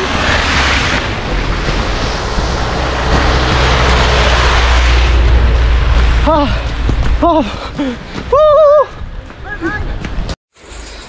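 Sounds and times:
heavy vehicle engine rumble: 0.0 - 8.4.

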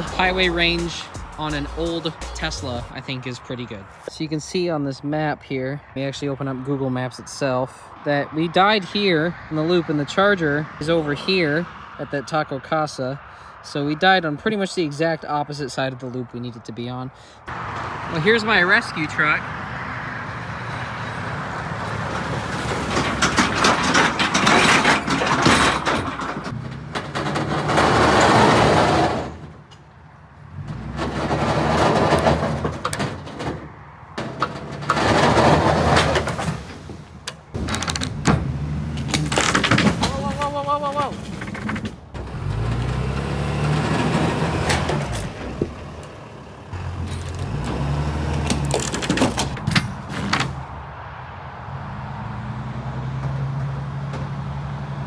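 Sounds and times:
truck engine running: 0.0 - 3.0
sharp clicks and knocks: 22.1 - 29.9, 30.6 - 36.6.

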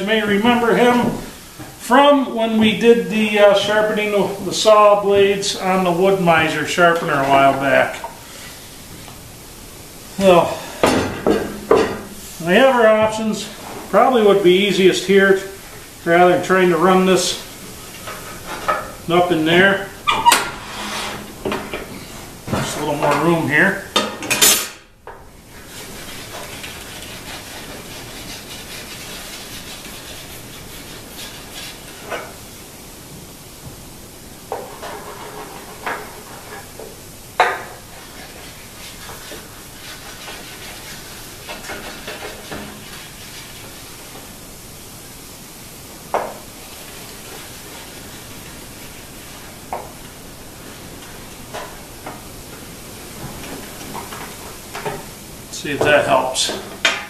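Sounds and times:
wax scraping on metal: 11.8 - 21.6, 25.5 - 32.4, 34.5 - 37.0, 37.6 - 44.2
knocks on table saw: 37.4 - 37.7.

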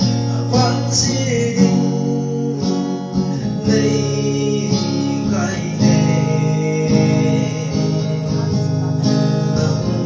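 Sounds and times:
acoustic guitars strumming: 0.0 - 10.0
man singing into microphone: 0.0 - 10.0.

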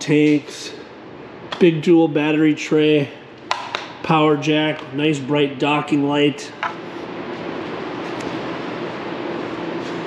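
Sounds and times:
faint hum: 0.0 - 10.0
machine and air noise: 0.0 - 10.0.

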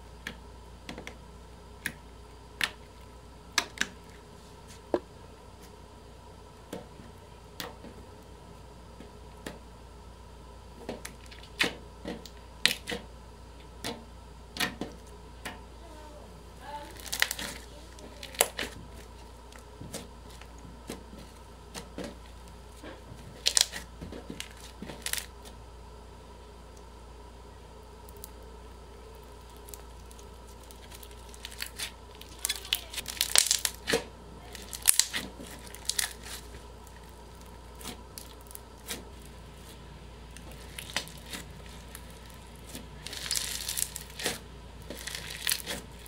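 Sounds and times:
slime crackling and popping: 16.8 - 21.9, 22.8 - 25.5, 28.0 - 46.0
slime squished by hand: 22.8 - 25.5, 29.0 - 46.0.

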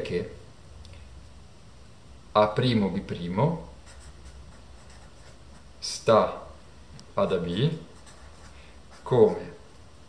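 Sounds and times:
pen scratching on paper: 3.8 - 5.7, 7.2 - 9.6.

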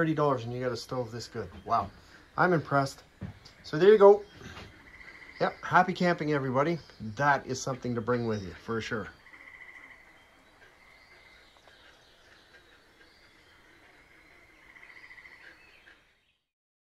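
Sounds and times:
short trilling calls: 1.2 - 7.2, 8.2 - 16.1.

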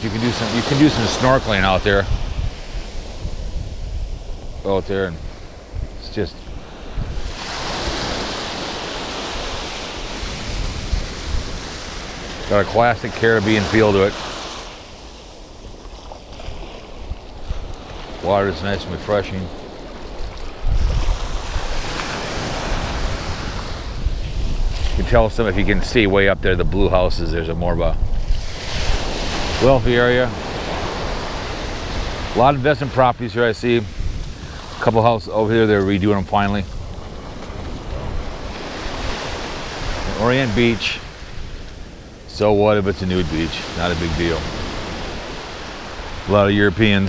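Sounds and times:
wind rumbling on microphone: 0.0 - 47.0
sea water sloshing in surf: 5.2 - 25.1, 36.7 - 42.0.

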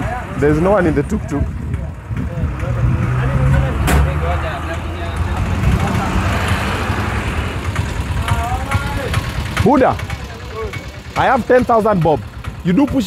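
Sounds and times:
auto-rickshaw engine droning: 0.0 - 13.0
faint voices: 0.0 - 13.0.

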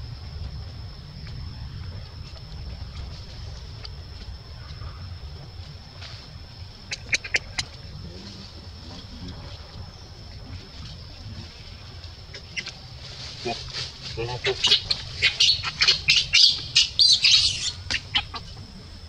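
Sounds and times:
low rumble: 0.0 - 14.2
baby macaque squeaking: 14.4 - 18.4.

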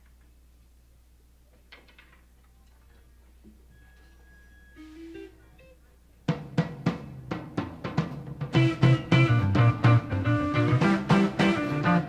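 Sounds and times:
electrical hum: 0.0 - 6.3, 8.4 - 12.0
faint held tone: 3.7 - 6.0.

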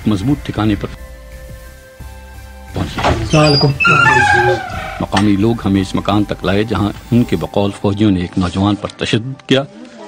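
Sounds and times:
background music: 0.0 - 10.0
person's voice: 2.8 - 9.0.

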